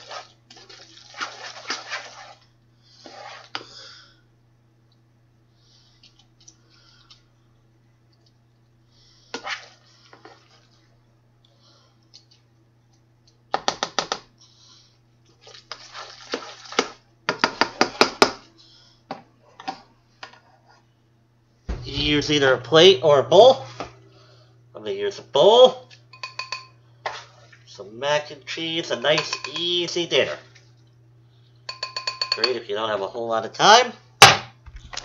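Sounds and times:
low electrical hum: 0.0s - 35.0s.

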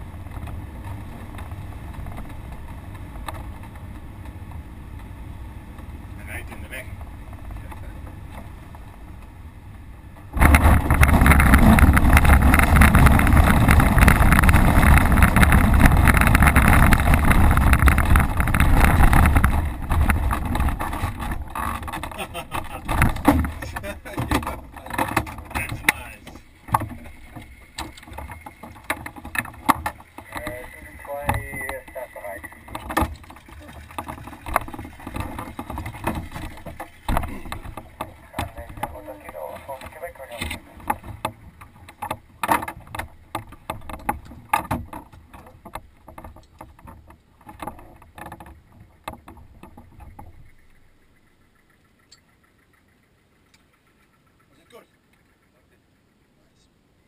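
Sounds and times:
glider wheel rumbling on grass: 0.0s - 55.6s
clicks and knocks: 10.2s - 50.7s.

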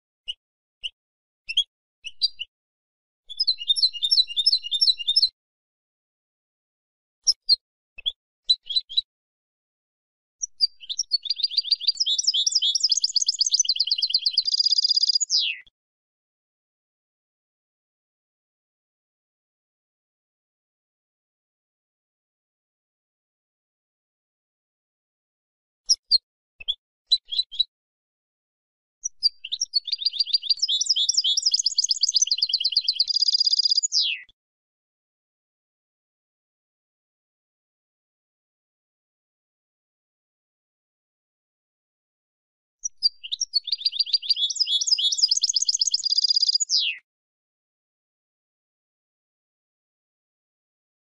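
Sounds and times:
goldfinch calls and twitter: 3.3s - 5.3s, 7.3s - 9.1s, 10.4s - 15.7s, 25.9s - 27.7s, 29.0s - 34.3s, 42.8s - 47.0s
buzzy bird trill: 10.6s - 15.6s, 29.2s - 34.2s, 43.0s - 47.0s
goldfinch calls: 43.0s - 47.0s.

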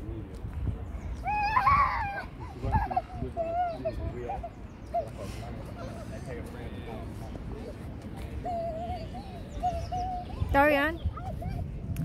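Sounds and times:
small children babbling: 1.2s - 6.2s, 7.6s - 11.9s.

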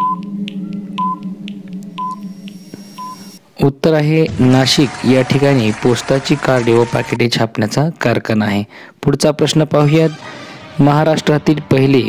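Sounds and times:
steady low drone: 0.0s - 3.6s.

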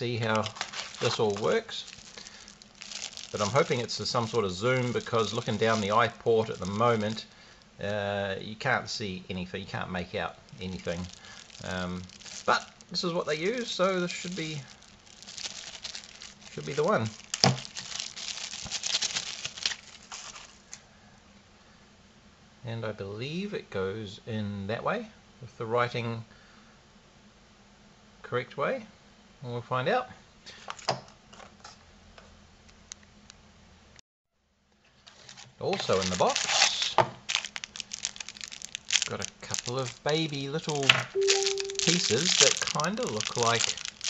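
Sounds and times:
plastic bag crinkling: 0.0s - 7.6s, 10.0s - 20.8s, 35.0s - 44.0s.

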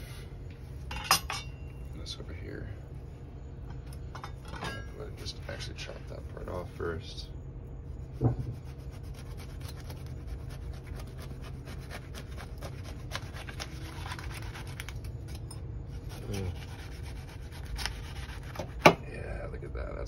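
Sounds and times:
knife sawing through fruit rind: 8.4s - 14.9s, 15.9s - 18.9s.

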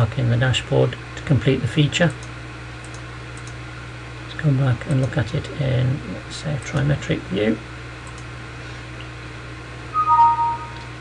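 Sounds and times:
two-note electronic chime: 9.9s - 10.9s.

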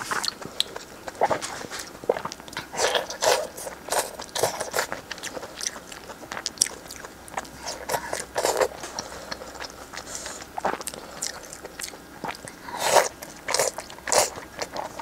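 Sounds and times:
wet chewing and smacking: 0.0s - 15.0s.

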